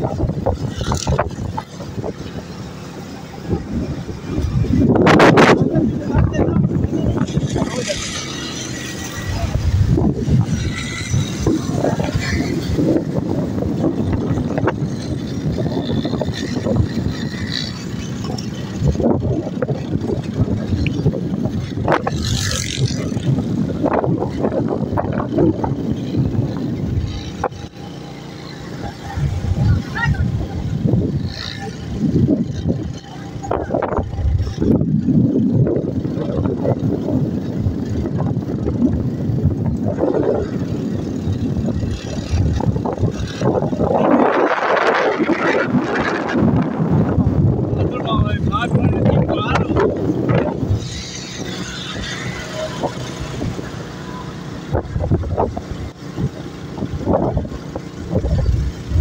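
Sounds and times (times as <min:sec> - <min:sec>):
engine and tyre noise: 0:00.0 - 0:59.0
wind buffeting microphone: 0:00.0 - 0:59.0.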